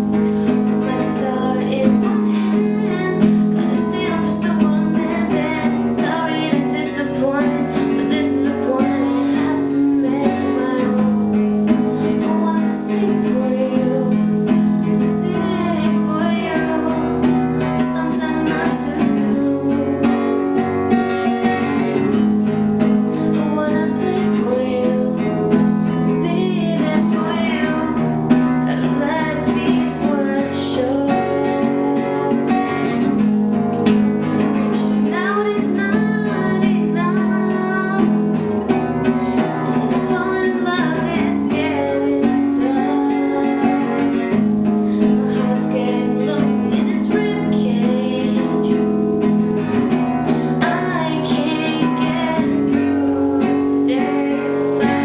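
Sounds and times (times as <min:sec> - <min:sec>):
acoustic guitar strumming: 0:00.0 - 0:55.0
woman singing: 0:00.0 - 0:55.0.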